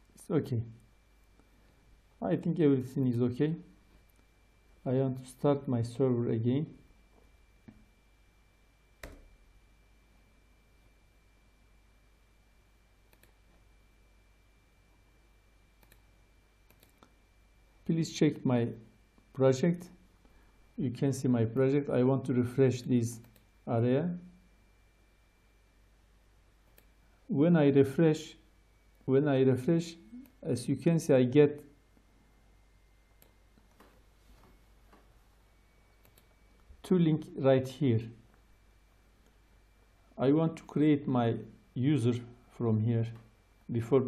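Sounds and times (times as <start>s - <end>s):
faint mouse clicks: 13.1s - 13.6s, 15.8s - 17.2s, 23.2s - 23.5s, 26.6s - 27.0s, 33.2s - 35.1s, 36.0s - 36.7s
man's voice: 20.8s - 24.2s.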